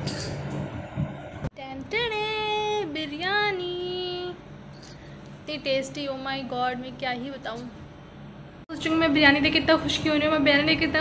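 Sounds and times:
woman singing: 1.6 - 4.4.

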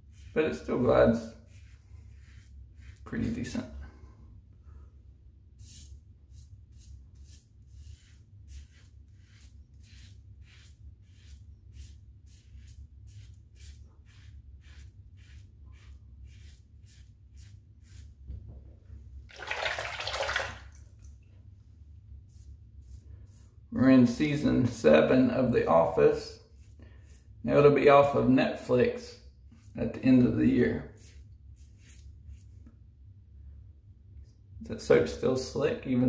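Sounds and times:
razor scraping stubble: 0.0 - 3.6, 5.6 - 18.2, 22.2 - 28.8, 29.4 - 32.6
running water: 19.3 - 21.2.

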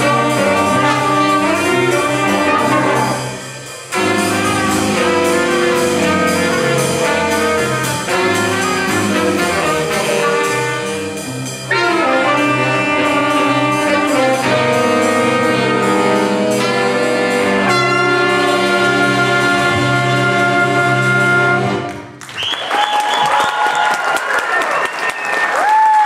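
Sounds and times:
jazz big band playing: 0.0 - 22.3.

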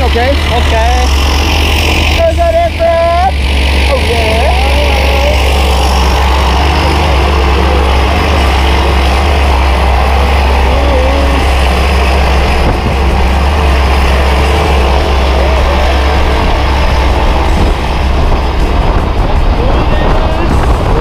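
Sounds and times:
propeller plane engine idling: 0.0 - 21.0.

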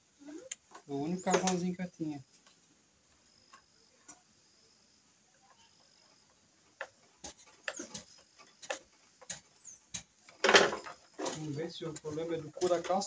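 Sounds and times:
sharp clicks and knocks: 6.7 - 13.0.

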